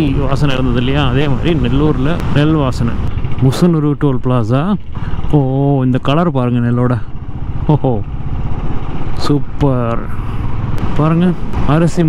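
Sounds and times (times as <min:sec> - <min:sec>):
man speaking: 0:00.0 - 0:08.1, 0:09.2 - 0:10.2, 0:10.9 - 0:12.0
motorcycle engine rumbling: 0:00.0 - 0:12.0.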